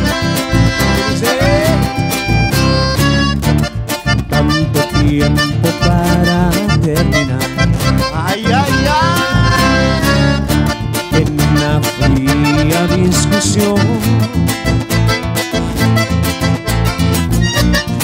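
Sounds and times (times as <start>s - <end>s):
gliding lead melody: 0.0s - 18.0s
live band playing latin dance music: 0.0s - 18.0s.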